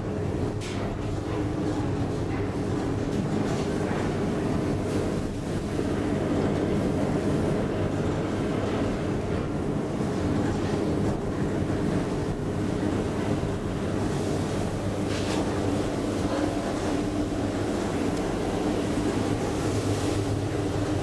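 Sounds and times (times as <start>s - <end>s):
elevator cab rumble and hum: 0.0s - 21.0s.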